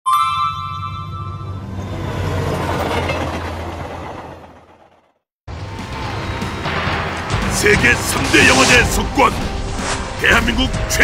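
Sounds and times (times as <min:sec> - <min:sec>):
bright bell-like chime: 0:00.1 - 0:01.8.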